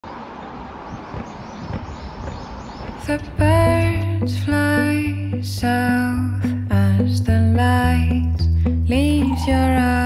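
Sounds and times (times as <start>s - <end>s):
distant traffic rumble: 0.0s - 4.2s
small birds chirping: 0.0s - 4.2s, 9.0s - 10.0s.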